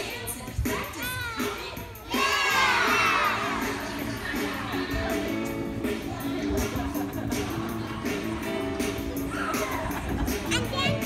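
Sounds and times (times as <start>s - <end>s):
young children shouting: 2.0s - 3.6s.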